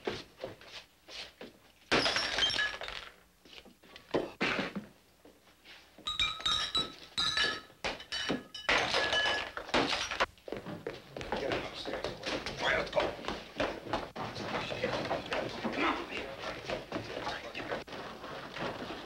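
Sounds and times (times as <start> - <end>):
glasses and bottles clinking: 1.9 - 3.2, 6.0 - 10.3.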